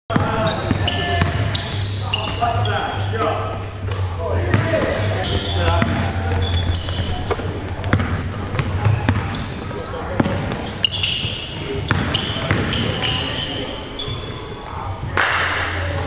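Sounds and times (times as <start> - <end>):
sneaker squeaks: 0.1 - 16.0
basketball bouncing on hardwood: 7.3 - 8.2.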